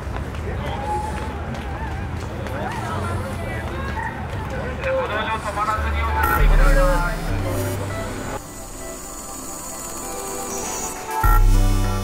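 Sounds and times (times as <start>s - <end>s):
crowd talking: 0.0s - 8.5s.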